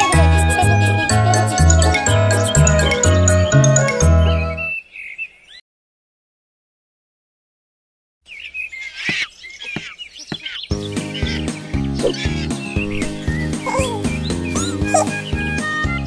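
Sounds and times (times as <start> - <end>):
upbeat instrumental children's music: 0.0 - 4.7, 10.7 - 16.0
birds chirping: 0.0 - 5.6, 8.2 - 16.0.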